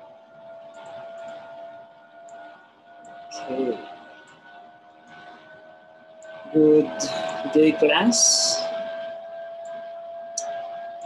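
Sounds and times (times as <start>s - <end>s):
faint steady two-pitch whine: 0.0s - 11.0s.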